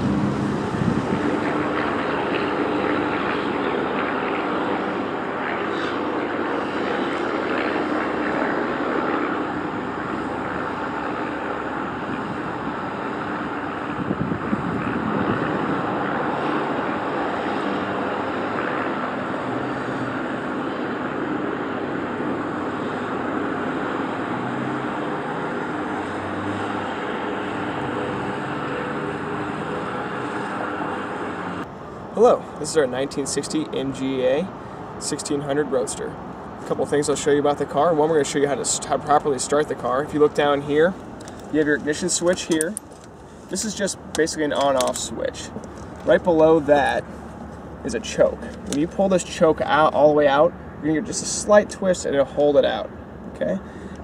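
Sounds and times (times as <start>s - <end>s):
car engine and exhaust drone: 0.0s - 54.0s.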